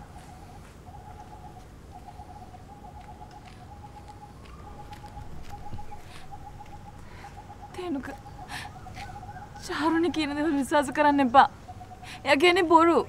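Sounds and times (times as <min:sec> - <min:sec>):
bird trilling: 0:00.0 - 0:13.0
faint background noise: 0:00.0 - 0:13.0.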